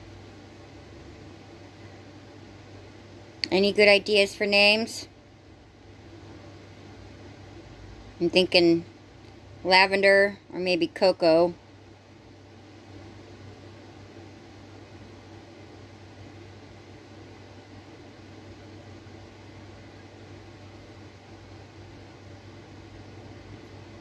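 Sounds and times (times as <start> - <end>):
constant low hum: 0.0 - 24.0.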